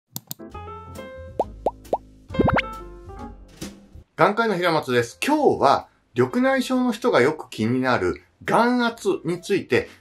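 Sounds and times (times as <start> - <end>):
rising bloop pops: 1.4 - 2.7.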